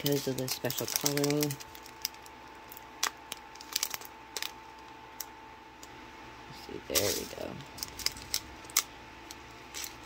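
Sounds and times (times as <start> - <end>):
gems clicking in plastic bags: 0.0 - 4.6
plastic rustling: 0.0 - 5.3, 6.9 - 10.0.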